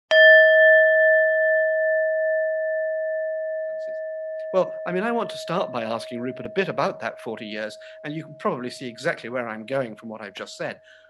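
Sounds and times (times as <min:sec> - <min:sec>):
bell-like chime ringing: 0:00.1 - 0:09.6.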